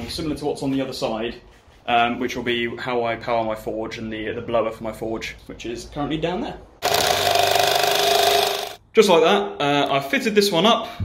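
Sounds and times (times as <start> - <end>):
cordless drill boring into wood: 6.8 - 8.8.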